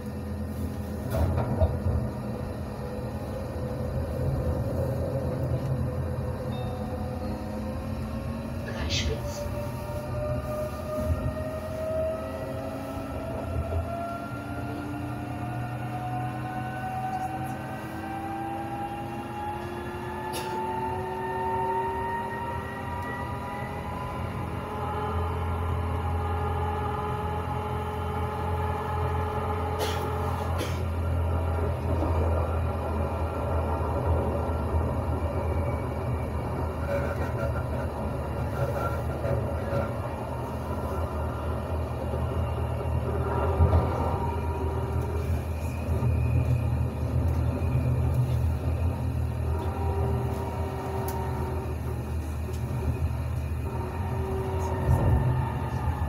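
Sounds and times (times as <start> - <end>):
rolling rumble of tram wheels: 0.0 - 56.0
tram traction motors whining: 0.0 - 56.0.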